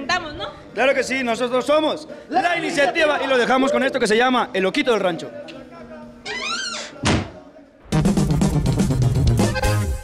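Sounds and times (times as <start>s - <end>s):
music: 7.8s - 10.0s.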